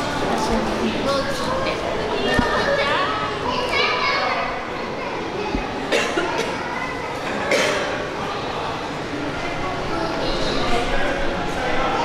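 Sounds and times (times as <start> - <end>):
background chatter of onlookers: 0.0 - 12.0
children talking and calling out: 0.0 - 12.0.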